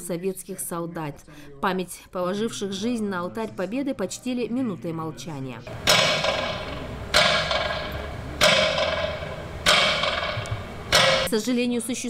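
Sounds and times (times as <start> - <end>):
slow metronome beats with echo: 5.7 - 11.3.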